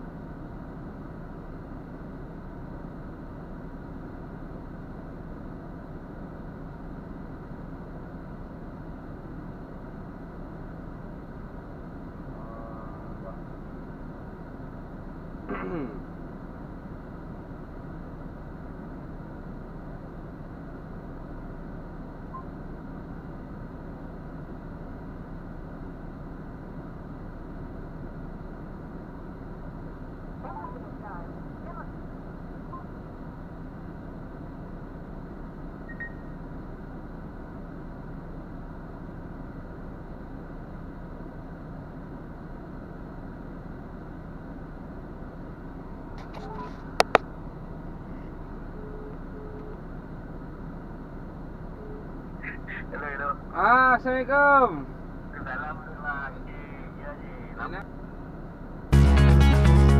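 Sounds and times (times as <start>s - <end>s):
diesel truck engine idling: 0.0s - 59.9s.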